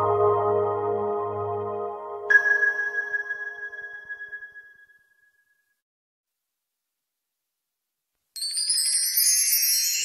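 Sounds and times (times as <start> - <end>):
bell-like chime ringing: 0.0 - 5.6.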